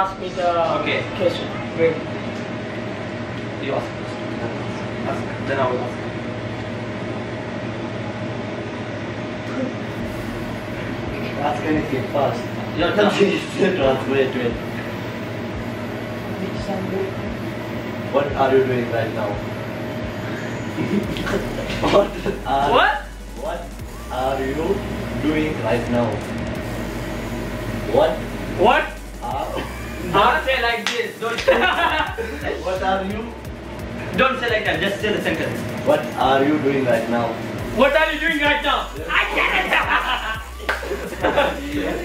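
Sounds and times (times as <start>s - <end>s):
steady mechanical hum: 0.0s - 42.0s.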